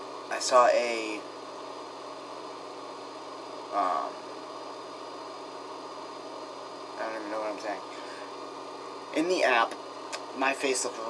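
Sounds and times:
faint high whine: 0.0s - 11.0s
steady background hum: 0.0s - 11.0s.

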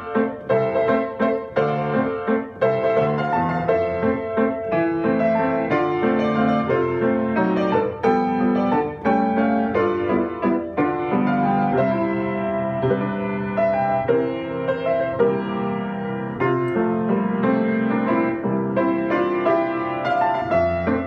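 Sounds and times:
solo grand piano: 0.0s - 21.0s.

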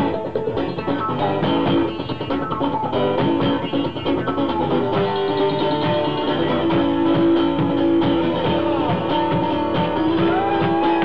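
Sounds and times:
drum and hi-hat beat: 0.0s - 11.0s
strummed guitar: 0.0s - 11.0s.

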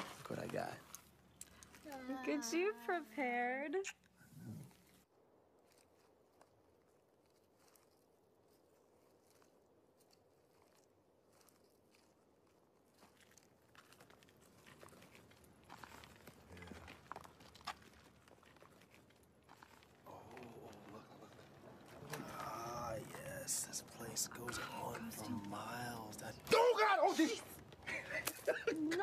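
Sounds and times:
footsteps crunching on debris: 5.6s - 22.3s.

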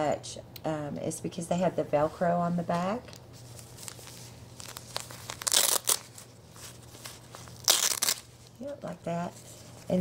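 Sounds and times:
soft fabric rustling: 2.0s - 10.0s
velcro tearing: 3.7s - 8.5s.

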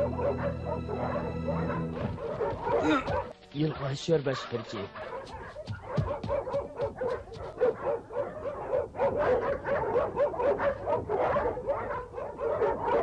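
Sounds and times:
dogs barking rapidly: 0.0s - 13.0s.

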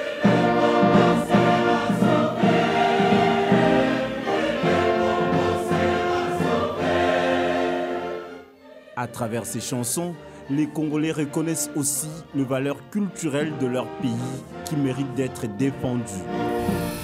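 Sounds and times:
choir singing held chords: 0.0s - 10.5s
symphony orchestra strings and brass: 0.0s - 17.0s.

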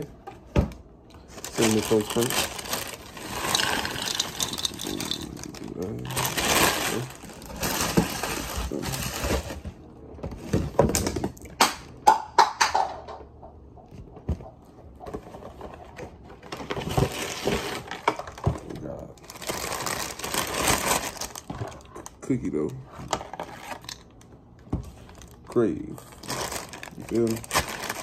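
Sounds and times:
plastic bag crinkling: 1.2s - 9.7s, 19.2s - 22.0s, 24.9s - 28.0s
dry cereal rattling: 1.3s - 9.2s, 26.0s - 28.0s
cardboard boxes rustling: 1.4s - 11.0s.

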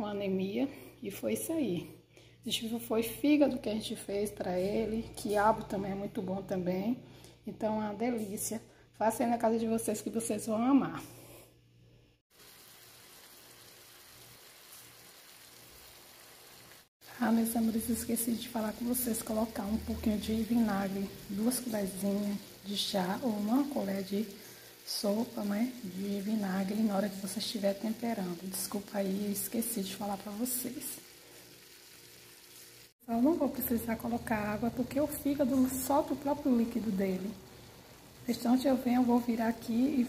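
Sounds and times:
faint sizzle of frying: 0.0s - 11.4s, 12.3s - 40.0s.

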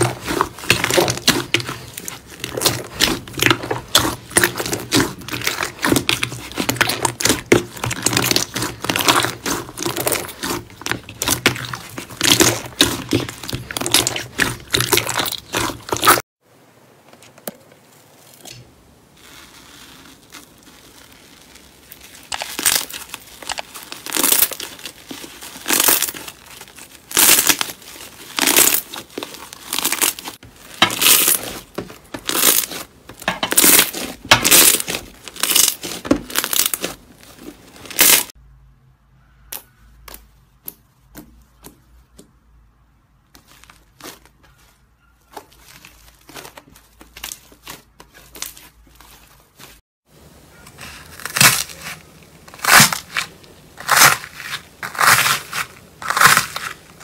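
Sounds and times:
slime squishing and popping: 0.0s - 16.2s, 19.2s - 38.3s
slime tearing: 0.0s - 16.2s, 19.2s - 38.4s, 50.7s - 57.0s.

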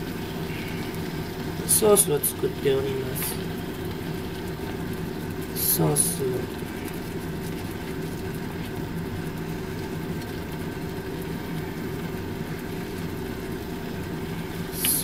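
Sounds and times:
low even hum: 0.0s - 15.0s
meat simmering in a frying pan: 0.0s - 15.0s.

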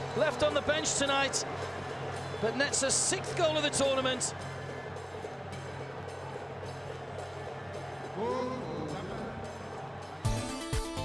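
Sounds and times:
football crowd noise: 0.0s - 11.0s
music with regular beat: 0.9s - 11.0s.

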